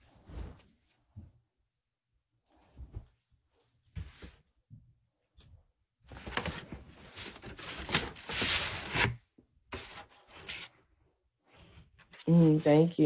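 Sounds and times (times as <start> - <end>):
fabric rustling: 0.0 - 1.2.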